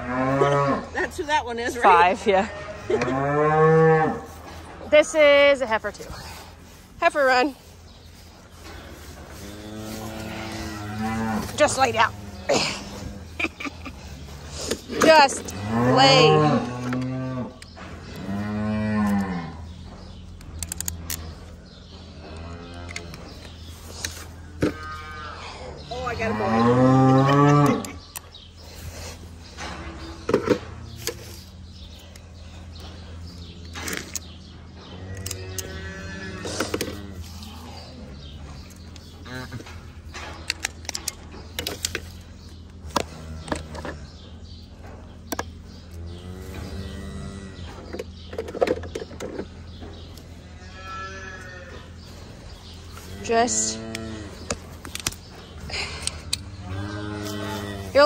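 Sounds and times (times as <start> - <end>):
cattle mooing: 0.0 - 1.1, 1.8 - 4.4, 9.3 - 13.4, 24.6 - 28.0, 50.4 - 51.9, 56.5 - 58.0.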